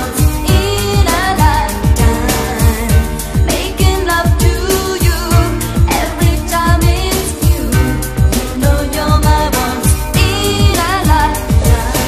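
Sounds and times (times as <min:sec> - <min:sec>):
fast disco drum beat: 0:00.0 - 0:12.0
person singing: 0:00.0 - 0:12.0.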